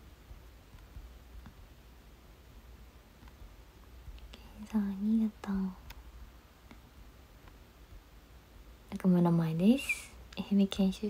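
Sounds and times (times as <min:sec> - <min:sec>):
young woman speaking softly: 0:04.3 - 0:05.9, 0:08.9 - 0:11.0.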